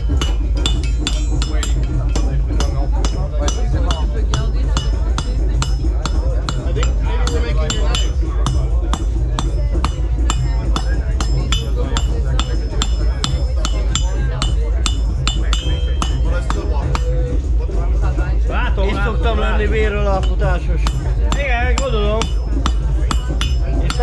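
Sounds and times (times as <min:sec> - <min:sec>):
hammer striking metal on anvil: 0:00.0 - 0:17.5, 0:18.9 - 0:24.0
low bass music: 0:00.0 - 0:24.0
voices: 0:00.0 - 0:24.0.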